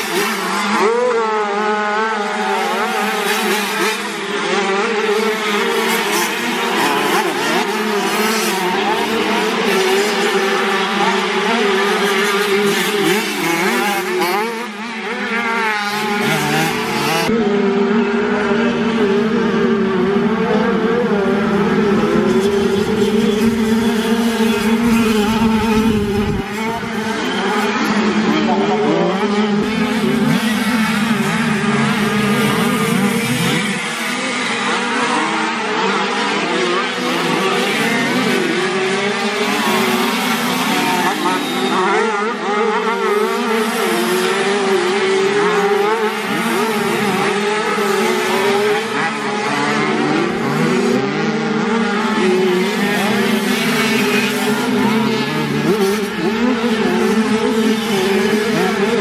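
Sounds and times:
motocross bike engines revving: 0:00.0 - 0:59.0.

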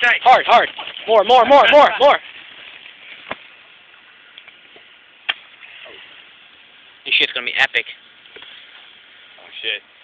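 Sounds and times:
faint outdoor background hiss: 0:00.0 - 0:10.0.

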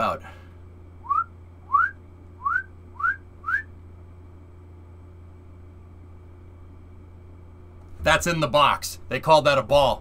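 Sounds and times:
steady low hum: 0:00.0 - 0:10.0
short rising whistled notes: 0:01.0 - 0:03.7.

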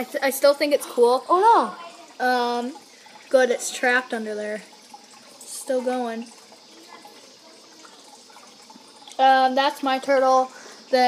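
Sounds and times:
water trickling from filter: 0:00.0 - 0:11.0.

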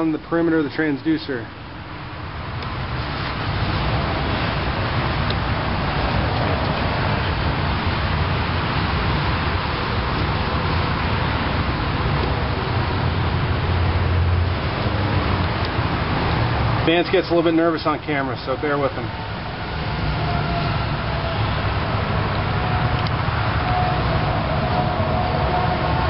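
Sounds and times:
steady rushing noise: 0:00.0 - 0:26.0.

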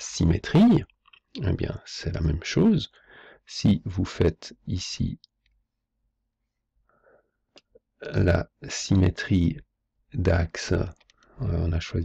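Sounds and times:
faint breath: 0:02.9 - 0:03.5, 0:06.8 - 0:07.4.

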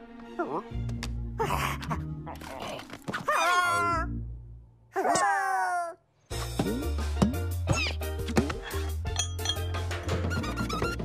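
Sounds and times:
background music with bass line: 0:06.3 - 0:11.0.

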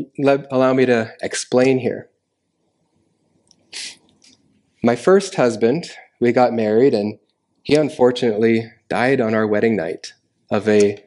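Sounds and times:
sharp intake of breath: 0:03.7 - 0:04.0.

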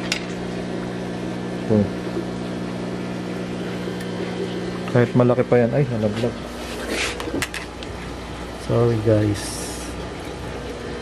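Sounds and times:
aquarium equipment humming: 0:00.0 - 0:11.0.

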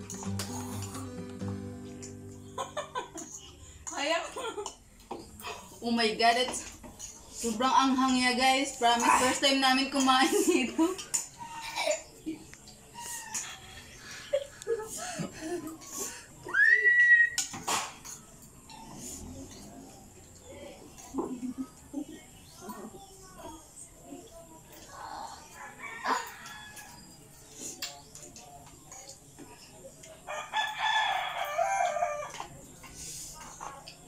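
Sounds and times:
rooster crowing: 0:25.5 - 0:27.1, 0:30.3 - 0:32.4.

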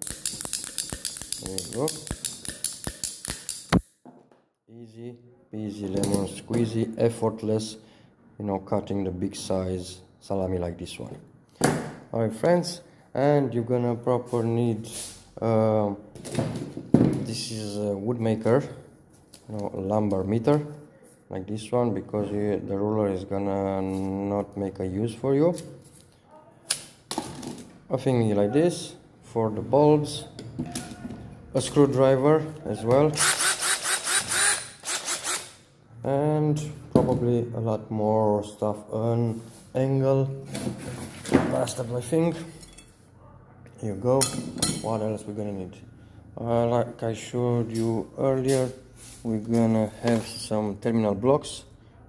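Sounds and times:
loud snap of cable cut: 0:00.0 - 0:04.0
ratcheting cable cutter clicking: 0:00.0 - 0:04.0, 0:33.2 - 0:35.6.

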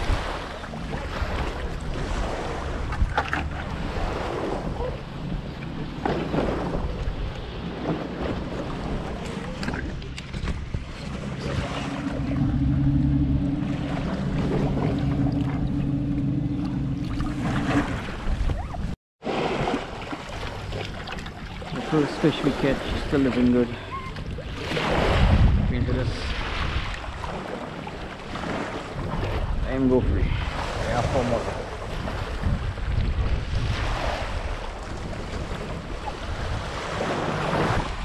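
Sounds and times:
water splashing: 0:00.0 - 0:38.0
wind on microphone: 0:23.9 - 0:27.4, 0:28.4 - 0:38.0.

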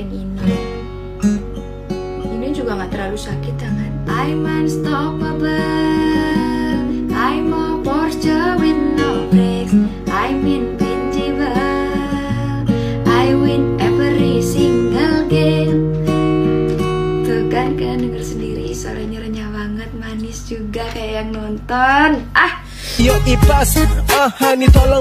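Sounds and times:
acoustic guitar strumming chords: 0:00.0 - 0:25.0
woman singing: 0:02.3 - 0:16.0, 0:17.1 - 0:23.8.

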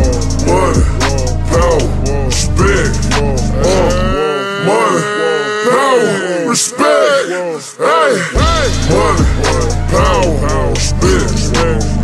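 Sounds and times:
deep bass: 0:00.0 - 0:04.2, 0:08.4 - 0:12.0
slowed hip hop beat: 0:00.0 - 0:05.1, 0:08.4 - 0:12.0.

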